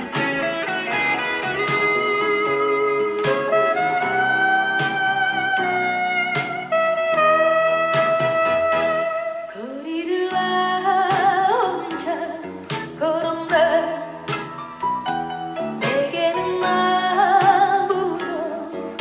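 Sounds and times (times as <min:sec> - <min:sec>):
guitar-led blues ballad: 0:00.0 - 0:19.0.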